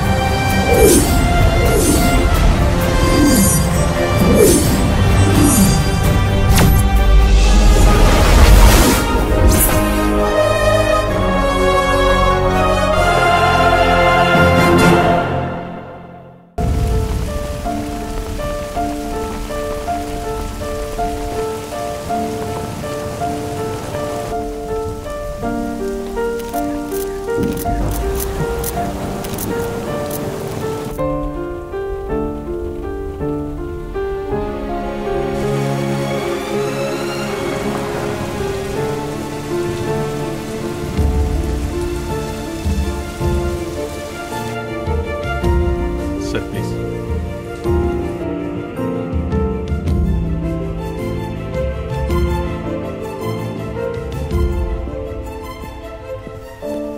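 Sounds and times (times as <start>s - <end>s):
steady rain falling: 0.0s - 9.4s, 16.6s - 48.7s
film score with sustained notes: 0.0s - 56.9s.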